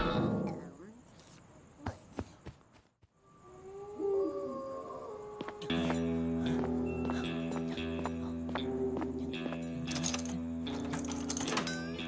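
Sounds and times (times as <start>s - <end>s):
low wavering hoot-like calls: 3.2s - 6.1s.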